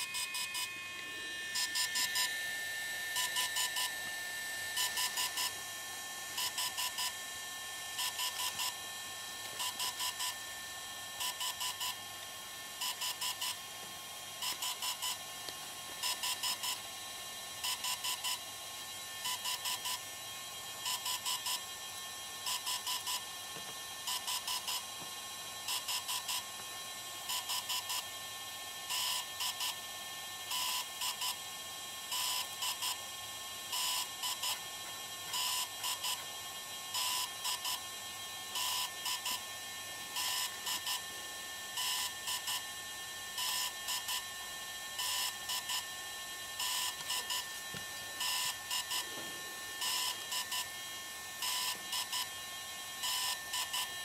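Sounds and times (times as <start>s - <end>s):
faint steady whine: 0.0s - 54.0s.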